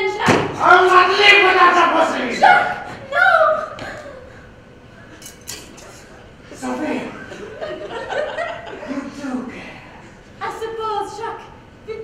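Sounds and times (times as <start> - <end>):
performers speaking: 0.0 - 4.1, 8.8 - 12.0.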